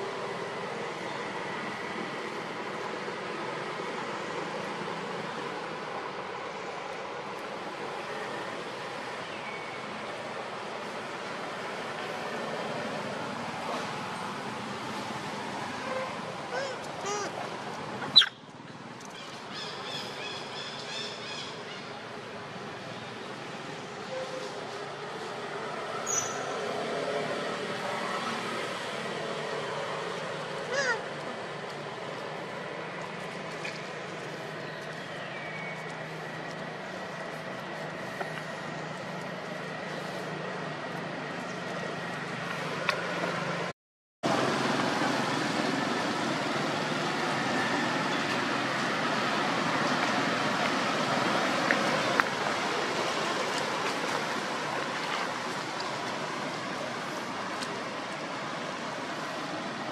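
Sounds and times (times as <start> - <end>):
outdoor background noise: 0.0 - 59.9
faint high calls: 15.8 - 17.4, 30.6 - 31.1.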